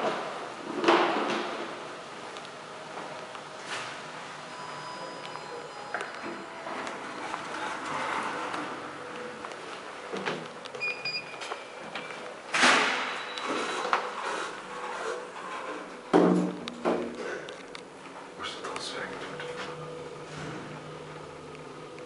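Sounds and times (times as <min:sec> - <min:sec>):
elevator sliding doors: 0:00.0 - 0:18.4, 0:19.2 - 0:22.0
short high beep: 0:04.5 - 0:06.3.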